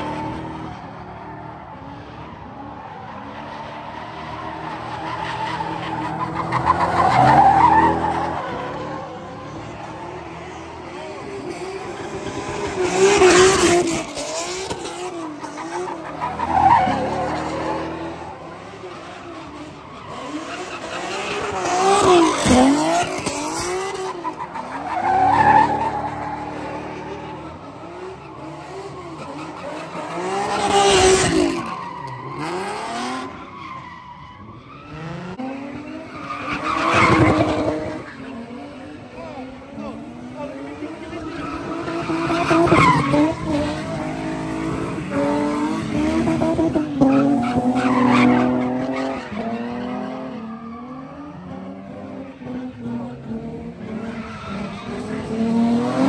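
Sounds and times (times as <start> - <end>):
car engines revving: 0.0 - 56.0
tyres squealing and skidding: 0.0 - 56.0.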